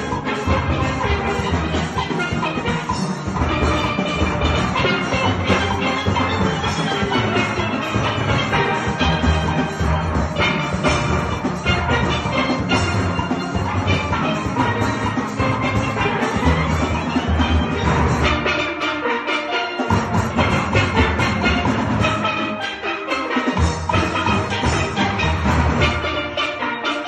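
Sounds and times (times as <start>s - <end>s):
steel band playing: 0.0s - 27.0s.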